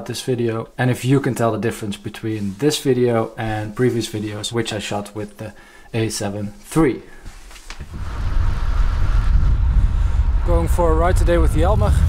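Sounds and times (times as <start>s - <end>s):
bicycle tyre noise on pavement: 7.8s - 12.0s
wind buffeting microphone: 7.8s - 12.0s.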